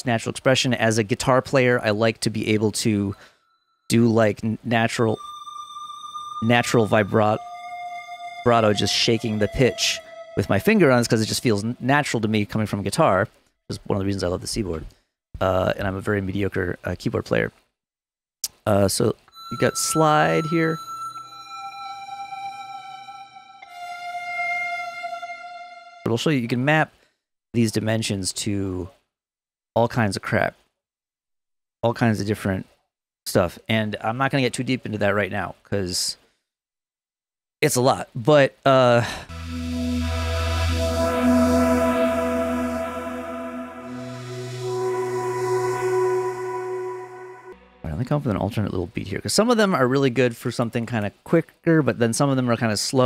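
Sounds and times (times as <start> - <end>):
synthesized string pad: 4.6 - 13.0, 39.3 - 49.1
low sub bass note: 4.8 - 12.8, 39.3 - 48.9.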